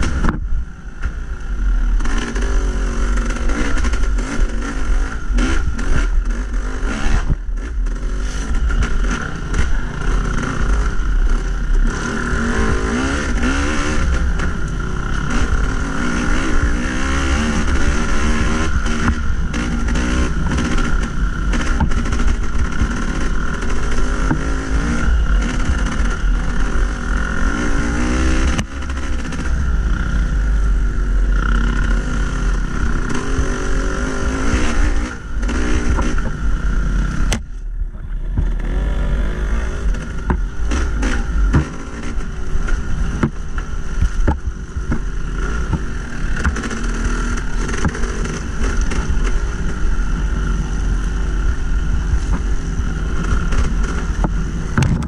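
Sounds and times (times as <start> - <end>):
dirt bike engine revving: 0.0 - 55.0
wind rumble on microphone: 0.0 - 55.0
clatter from bumps: 13.2 - 27.6, 39.7 - 49.8, 52.2 - 55.0.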